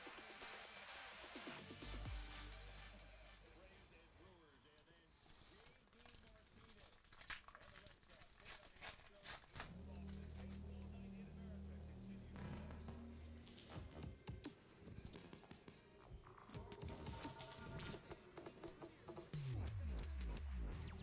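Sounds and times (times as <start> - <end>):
foil wrapper crinkling and tearing: 5.2 - 10.6
low bass notes: 9.7 - 13.6.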